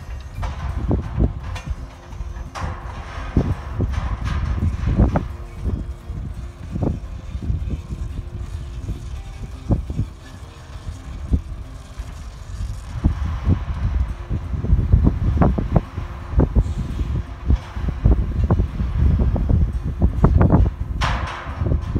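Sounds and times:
dragline engine running: 0:00.0 - 0:21.9
wind buffeting microphone: 0:00.0 - 0:21.9.

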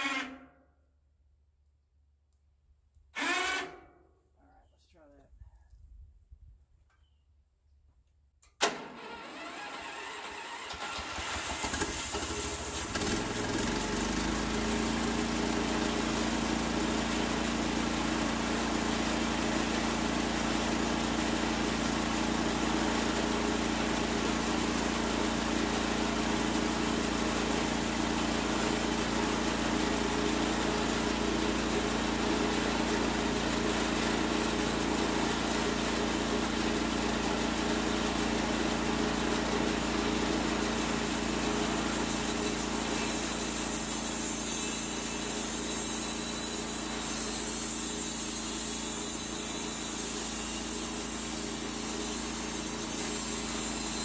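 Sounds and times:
sawmill engine running: 0:03.2 - 0:03.9, 0:08.6 - 0:54.0.

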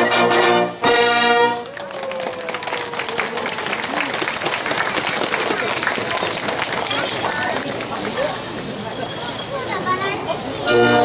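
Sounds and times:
crowd chattering: 0:00.0 - 0:11.0
faint clicks or claps: 0:01.6 - 0:08.8.

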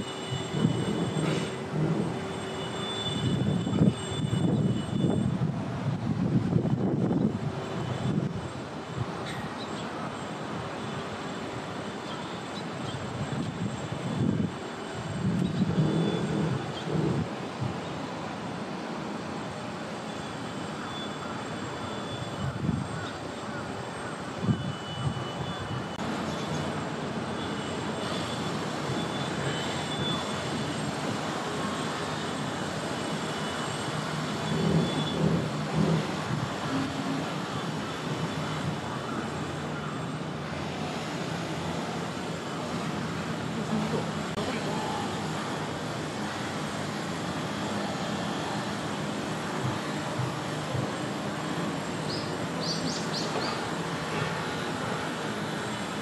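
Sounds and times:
outdoor background rumble: 0:00.0 - 0:09.6, 0:13.1 - 0:17.9, 0:25.9 - 0:56.0.

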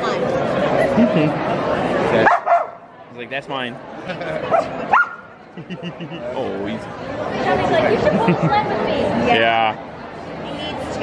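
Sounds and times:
people laughing: 0:00.6 - 0:01.8, 0:03.9 - 0:06.8, 0:07.8 - 0:08.8
dog yipping: 0:02.3 - 0:02.8, 0:04.9 - 0:05.2.

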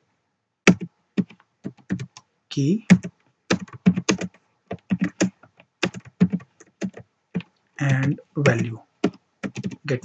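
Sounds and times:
computer keyboard typing: 0:00.7 - 0:02.2, 0:02.9 - 0:10.0.

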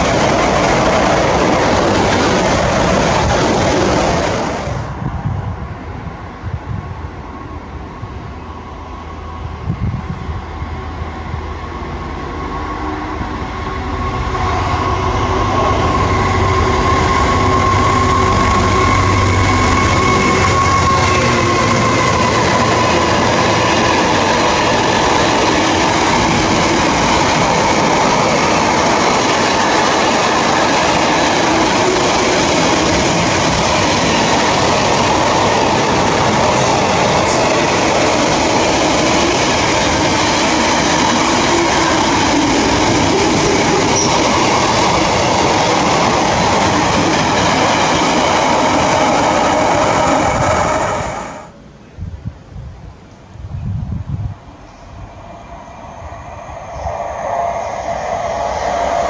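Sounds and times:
freight train passing: 0:00.0 - 0:59.0
high whine: 0:54.5 - 0:59.0.

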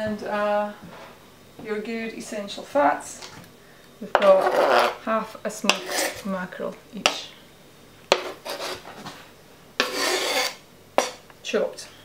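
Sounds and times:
knife scraping plastic chopping board: 0:04.2 - 0:05.0, 0:05.7 - 0:06.2, 0:08.1 - 0:09.1, 0:09.8 - 0:11.2.

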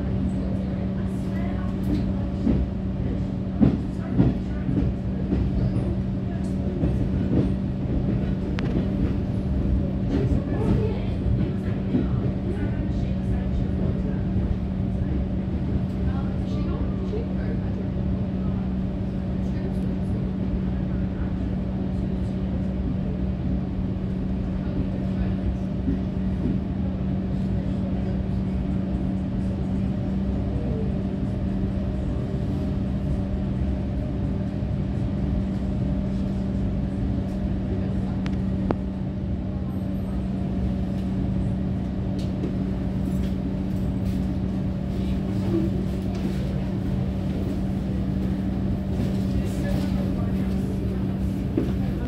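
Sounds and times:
constant low hum: 0:00.0 - 0:52.0
train running noise: 0:00.0 - 0:52.0.

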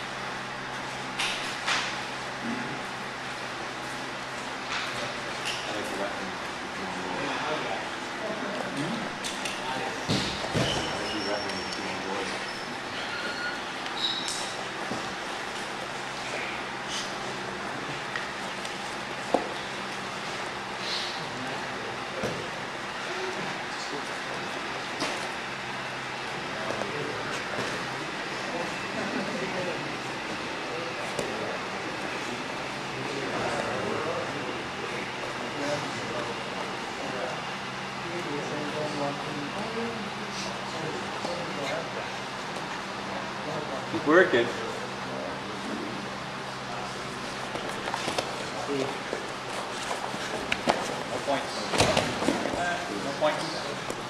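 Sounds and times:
indistinct background talk: 0:20.5 - 0:54.0
knocks and slaps on mats: 0:51.7 - 0:52.6.

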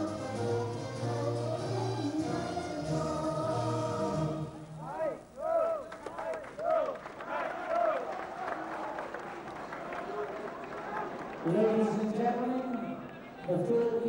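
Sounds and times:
choral music: 0:00.0 - 0:05.0
crowd noise: 0:04.2 - 0:14.0.

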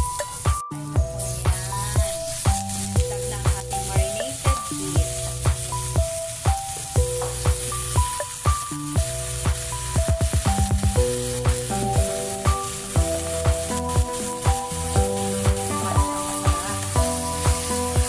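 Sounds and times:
background music with drum beat: 0:00.0 - 0:18.0
drum roll: 0:00.0 - 0:18.0
meat sizzling in a pan: 0:00.0 - 0:18.0.

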